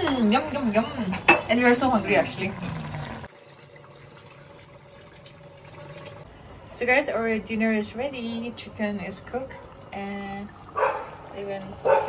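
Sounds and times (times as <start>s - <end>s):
curry bubbling in a pot: 0.0s - 6.3s, 7.9s - 11.8s.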